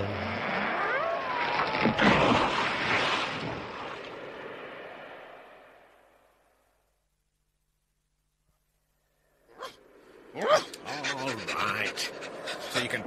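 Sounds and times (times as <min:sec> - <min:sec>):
tree crashing down: 0:01.6 - 0:04.1.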